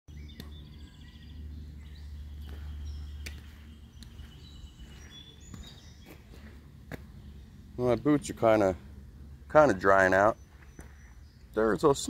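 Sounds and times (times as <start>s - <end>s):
birds chirping and trilling: 0.1s - 12.0s.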